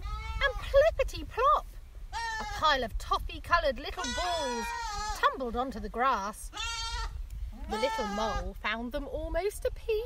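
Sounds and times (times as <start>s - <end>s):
woman imitating goat bleating: 0.0s - 1.0s, 2.1s - 2.8s, 3.9s - 5.5s, 6.5s - 8.6s.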